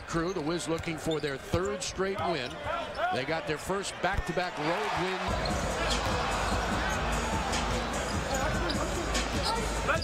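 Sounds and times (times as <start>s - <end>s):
crowd murmur: 5.3s - 10.0s.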